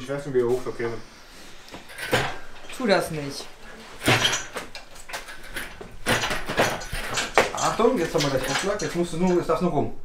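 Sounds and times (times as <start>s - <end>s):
metal scraping and knocking: 3.8s - 9.5s.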